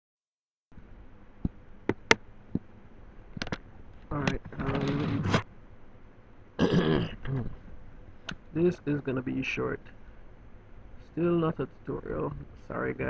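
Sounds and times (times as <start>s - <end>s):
man's voice: 11.2s - 13.0s.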